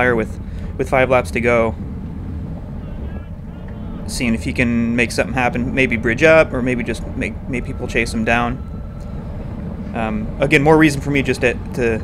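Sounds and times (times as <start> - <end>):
low road rumble: 0.0 - 12.0
wind buffeting microphone: 0.0 - 12.0.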